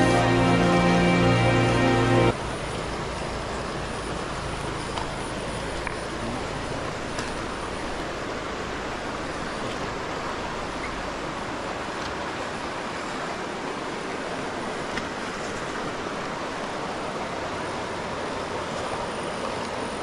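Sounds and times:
background music: 0:00.0 - 0:02.3
river water rushing: 0:00.0 - 0:20.0.

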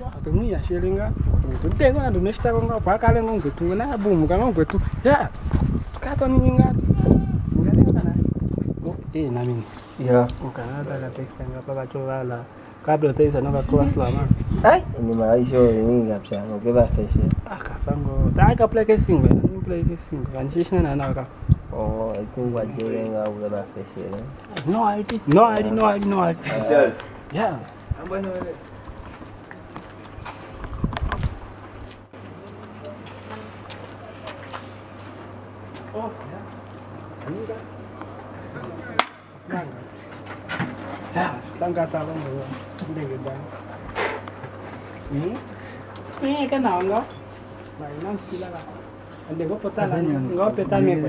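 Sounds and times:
people talking: 0:00.0 - 0:05.4, 0:06.0 - 0:08.2, 0:08.8 - 0:28.6, 0:32.4 - 0:34.7, 0:37.2 - 0:37.7, 0:38.4 - 0:39.9, 0:41.1 - 0:44.4, 0:45.0 - 0:45.5, 0:46.2 - 0:47.2, 0:47.8 - 0:51.0
high-pitched insect buzz: 0:00.0 - 0:51.0
sharp click: 0:39.0 - 0:39.2.

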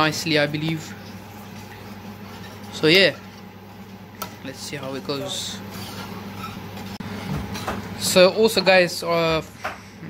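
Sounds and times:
low hum from steaming pot: 0:00.0 - 0:10.0
steady rushing kitchen noise: 0:00.0 - 0:10.0.

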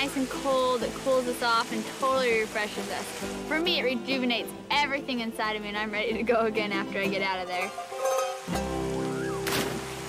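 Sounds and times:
waterfall rushing: 0:00.0 - 0:04.0, 0:07.2 - 0:10.0
background music with sustained chords: 0:00.0 - 0:10.0
person splashing into pool: 0:09.3 - 0:10.0.

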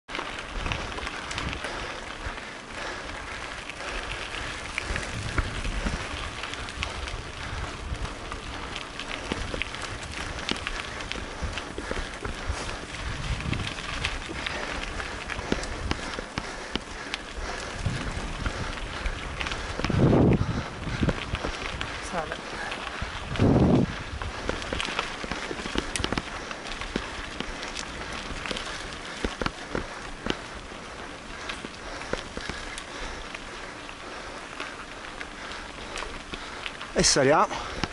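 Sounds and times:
bike tyres crunching on gravel: 0:00.1 - 0:37.9.

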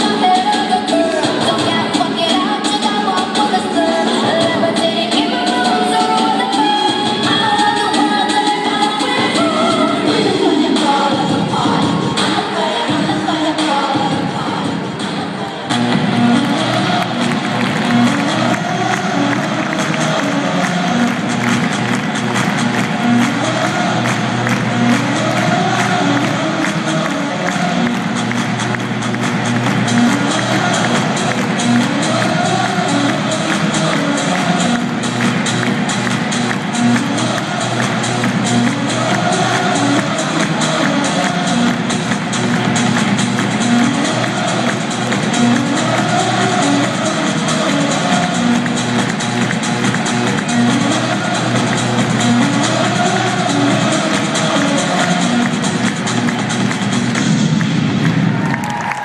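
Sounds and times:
crowd noise: 0:00.0 - 0:59.0
dance music with steady beat: 0:00.0 - 0:59.0.

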